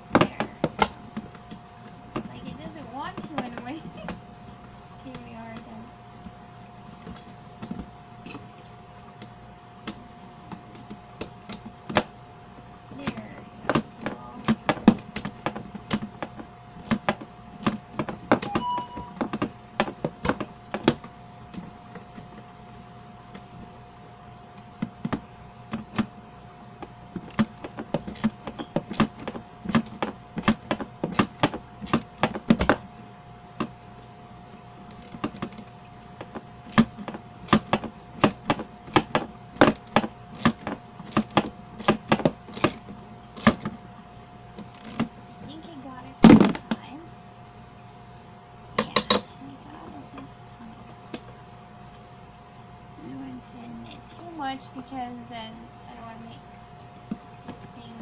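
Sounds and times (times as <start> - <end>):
faint steady hum: 0.0 - 58.0
wrench clicking against bolt: 13.0 - 15.4, 17.6 - 17.9, 27.3 - 32.2, 35.0 - 35.8, 37.5 - 43.6, 44.7 - 45.1.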